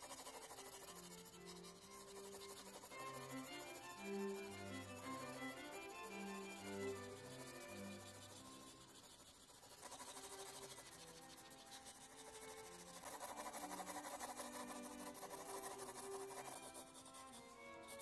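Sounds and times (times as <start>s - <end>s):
soft music with held strings: 0.0s - 9.2s, 9.8s - 18.0s
pencil scratching on paper: 0.0s - 18.0s.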